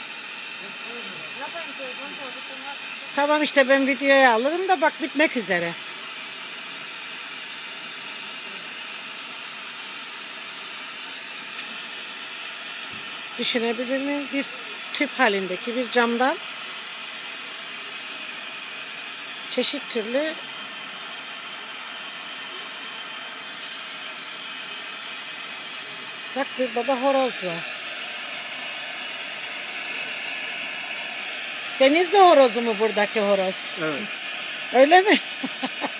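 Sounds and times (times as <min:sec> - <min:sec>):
gas torch hissing: 0:00.0 - 0:35.9.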